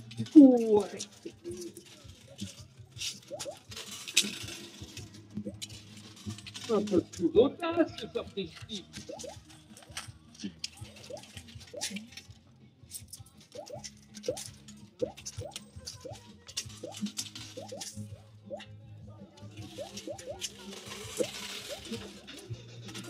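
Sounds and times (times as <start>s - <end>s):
coins clinking: 0.0s - 7.3s, 8.6s - 12.3s, 12.9s - 18.1s, 19.5s - 23.0s.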